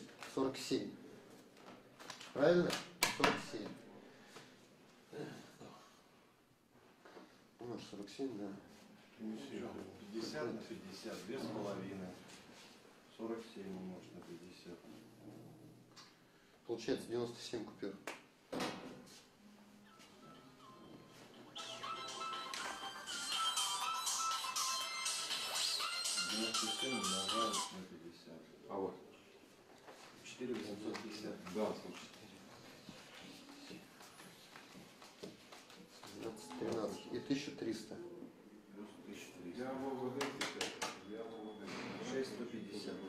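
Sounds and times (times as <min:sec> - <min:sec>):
phone ringtone melody: 0:19.8 - 0:27.8
person speaking: 0:36.0 - 0:40.6.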